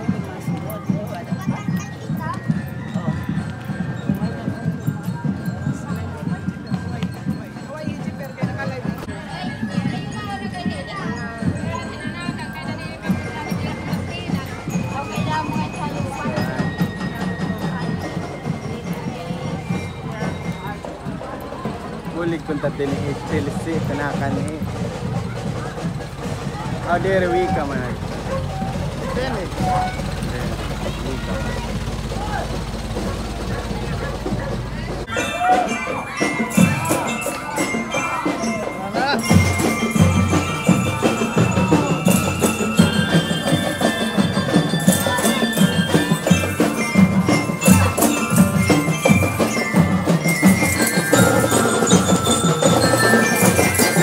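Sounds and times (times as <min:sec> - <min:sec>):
people chattering: 0:00.0 - 0:54.0
steady low drumbeat: 0:00.0 - 0:54.0
voices of crowd: 0:00.0 - 0:54.0
truck engine running: 0:24.4 - 0:35.1.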